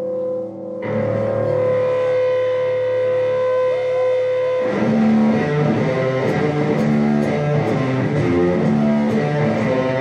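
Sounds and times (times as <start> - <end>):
electric guitar sustained note: 0.0 - 10.0.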